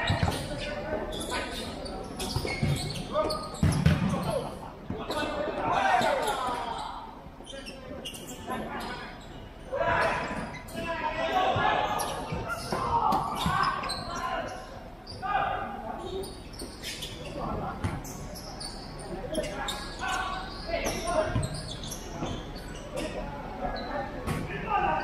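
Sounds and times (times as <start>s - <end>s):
ball kicked and bouncing on court: 0.0s - 0.5s, 2.2s - 5.2s, 17.8s - 18.1s
players shouting: 9.7s - 14.6s.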